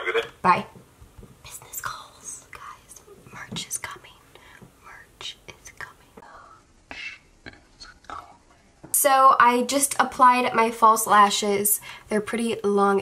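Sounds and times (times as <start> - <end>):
woman whispering: 1.4 - 7.2, 7.9 - 8.5.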